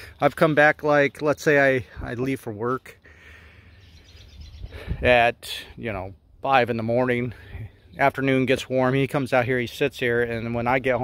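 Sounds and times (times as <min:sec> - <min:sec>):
faint bird chirps: 0:03.3 - 0:05.0.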